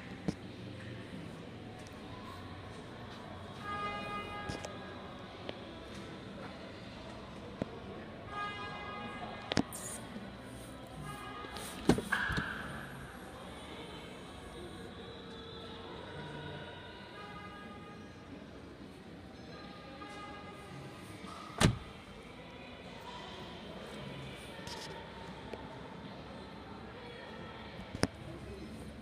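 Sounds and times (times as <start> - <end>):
faint music: 0.0 - 29.0
voices: 0.0 - 29.0
car door unlatching and opening: 21.6 - 21.9.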